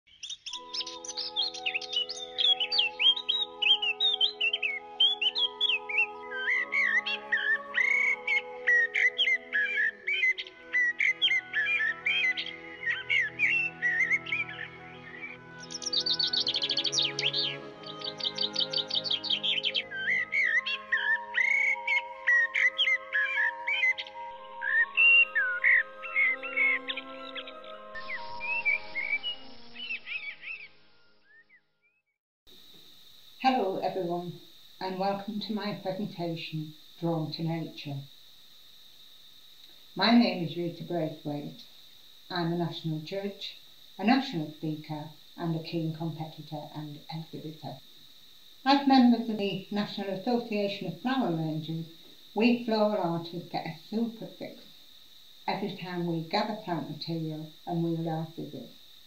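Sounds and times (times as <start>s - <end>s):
birds chirping: 0.1s - 59.0s
soft music of held chords: 0.3s - 31.8s.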